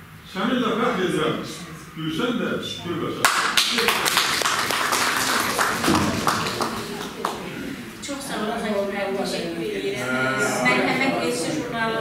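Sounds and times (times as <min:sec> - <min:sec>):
audience clapping: 0:03.2 - 0:07.6.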